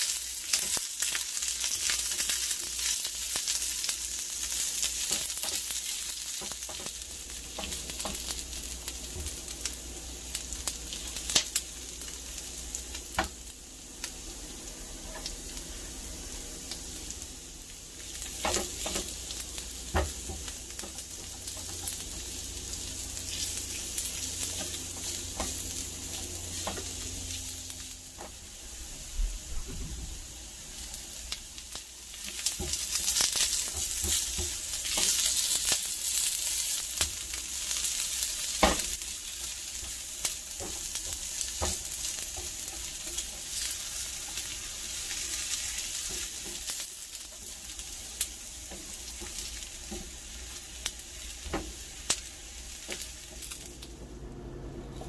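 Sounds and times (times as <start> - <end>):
vegetables sizzling in oil: 0.0 - 55.0.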